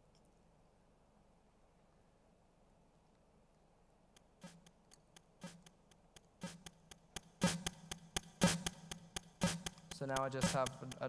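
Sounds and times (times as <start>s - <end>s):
synthesizer drum beat: 4.4s - 11.0s.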